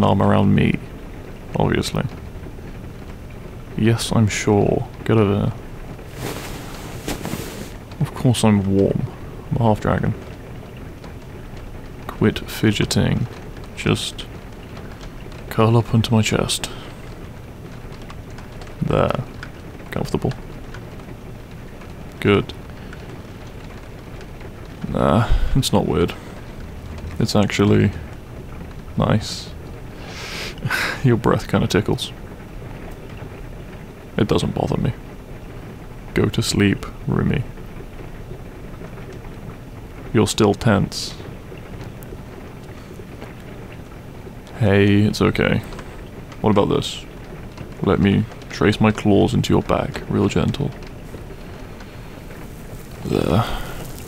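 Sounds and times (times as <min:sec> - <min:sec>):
steady rain: 0:00.0 - 0:54.0.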